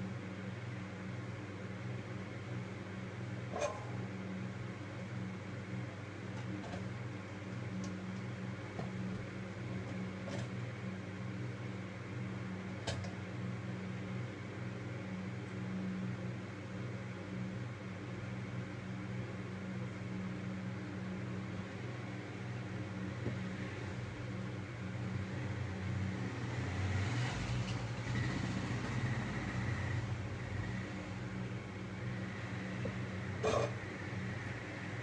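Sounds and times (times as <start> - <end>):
low machinery hum: 0.0 - 35.0.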